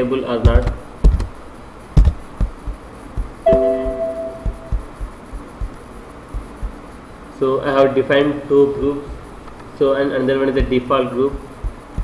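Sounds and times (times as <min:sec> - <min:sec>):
computer alert chime: 0:03.5 - 0:04.9.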